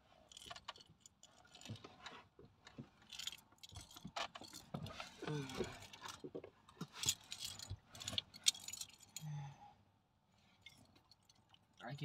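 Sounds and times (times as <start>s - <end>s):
metal jangling and clinking: 3.0s - 6.2s, 6.8s - 9.4s, 10.6s - 11.8s.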